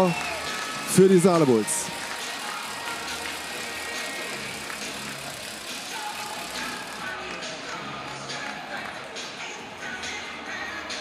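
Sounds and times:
music over public address system: 0.0 - 11.0.

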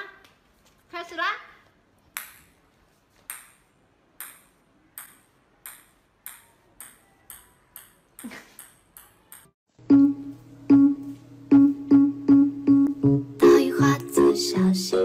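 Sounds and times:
ping-pong ball bouncing on tiles: 3.3 - 3.6, 4.2 - 9.6.

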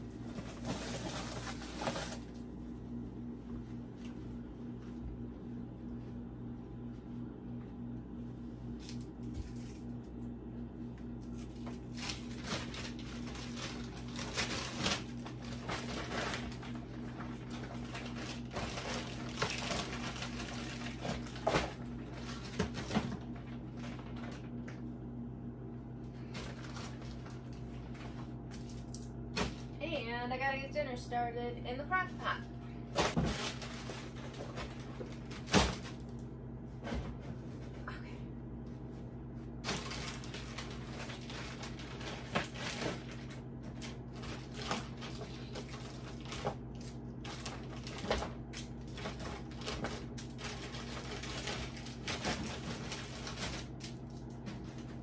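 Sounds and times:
plastic bags rustling: 0.0 - 2.4, 11.3 - 24.6, 26.2 - 29.8, 32.9 - 36.2, 39.6 - 55.0
steady low hum: 0.0 - 55.0.

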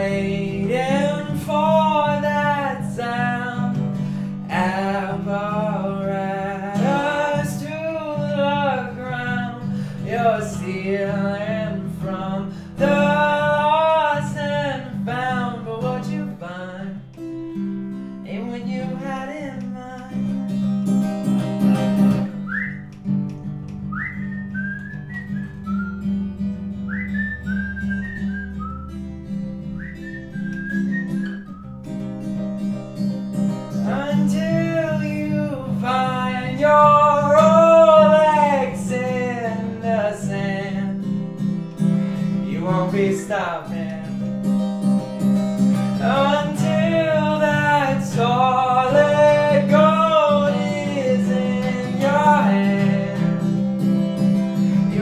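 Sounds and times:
man singing: 0.0 - 17.2, 18.2 - 20.6, 33.7 - 41.4, 42.2 - 44.4, 45.8 - 53.9, 54.6 - 55.0
acoustic guitar: 0.0 - 55.0
whistled melody: 21.6 - 32.1.

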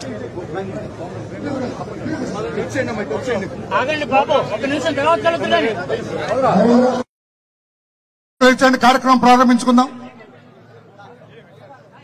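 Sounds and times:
men chattering in a crowd: 0.0 - 7.0, 8.5 - 12.0.

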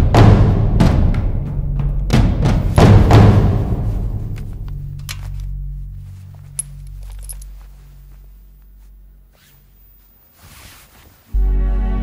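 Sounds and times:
light metallic clinks: 6.2 - 8.6.

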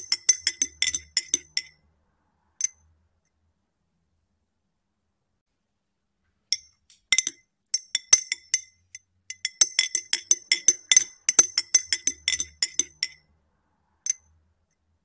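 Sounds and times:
spoon clinking against glass: 0.0 - 1.7, 6.5 - 13.2.

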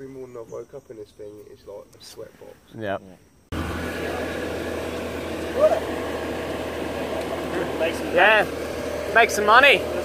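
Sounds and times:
engine idling: 3.5 - 10.0.

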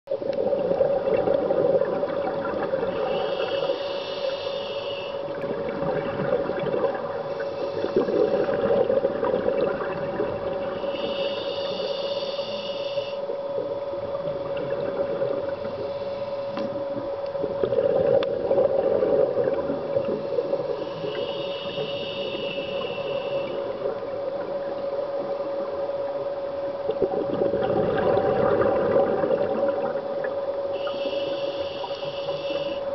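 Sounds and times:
steady hum: 0.1 - 32.9
exhaled bubbles rushing: 0.2 - 3.6, 5.3 - 10.7, 13.7 - 15.9, 16.8 - 21.2, 26.8 - 30.4
regulator inhalation hiss: 2.9 - 5.3, 7.2 - 8.6, 10.7 - 13.3, 15.6 - 16.8, 20.0 - 23.9, 30.7 - 32.9.

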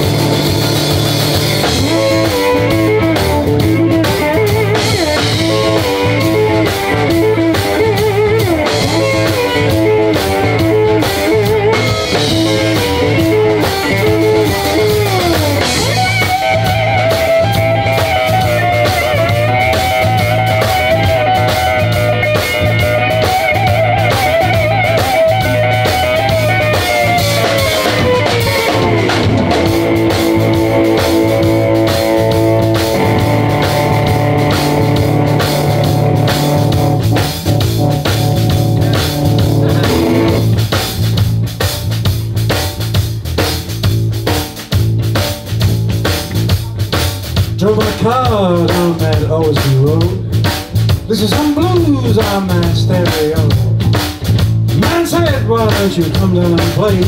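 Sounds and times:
bass guitar: 0.0 - 57.0
drum kit beat: 0.0 - 57.0
electric lead guitar: 0.0 - 57.0.

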